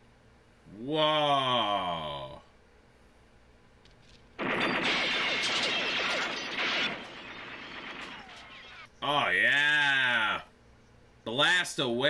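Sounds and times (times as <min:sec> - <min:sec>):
machine-gun fire: 0:04.4 - 0:08.9.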